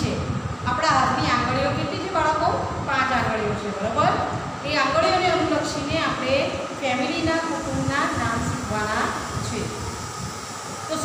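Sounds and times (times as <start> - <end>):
woman's voice: 0.0 - 10.0
low rumbling background noise: 0.0 - 11.0.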